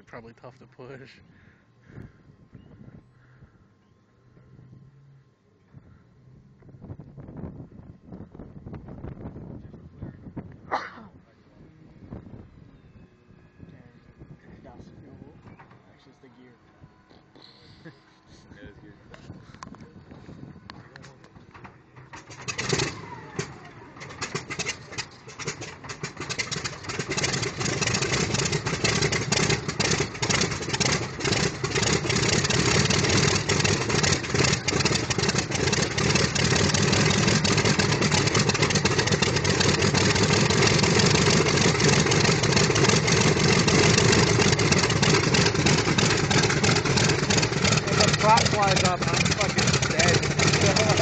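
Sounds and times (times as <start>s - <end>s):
radial aircraft engine starting up: 11.6s - 51.0s.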